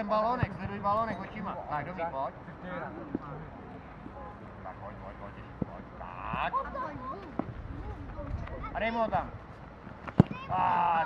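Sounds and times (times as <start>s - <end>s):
low outdoor background noise: 0.0s - 11.0s.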